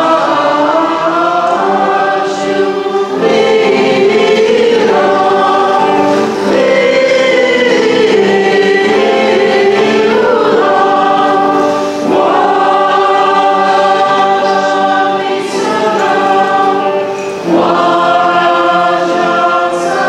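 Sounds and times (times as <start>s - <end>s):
group singing a hymn: 0.0s - 20.0s.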